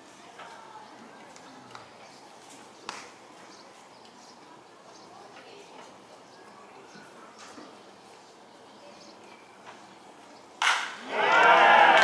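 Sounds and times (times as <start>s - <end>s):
baseball bat cracking ball: 10.6s - 12.0s
crowd shouting and cheering: 11.0s - 12.0s.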